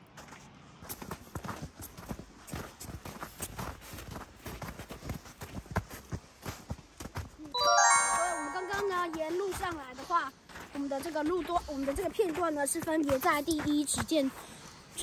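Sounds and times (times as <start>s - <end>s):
bright chiming jingle: 7.6s - 9.2s.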